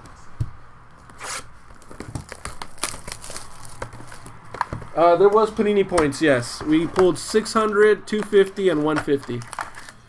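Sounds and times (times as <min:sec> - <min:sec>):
plastic wrap tearing and crinkling: 0:01.2 - 0:05.5, 0:08.6 - 0:10.0.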